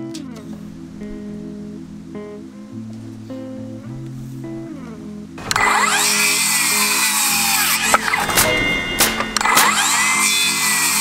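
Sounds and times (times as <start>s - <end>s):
guitar music: 0.0s - 11.0s
circular saw cutting wood: 5.4s - 11.0s.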